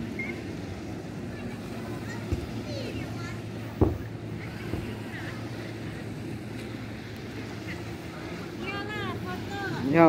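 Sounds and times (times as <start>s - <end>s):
distant motorboat engine drone: 0.0s - 10.0s
faint far-off voices: 0.0s - 10.0s.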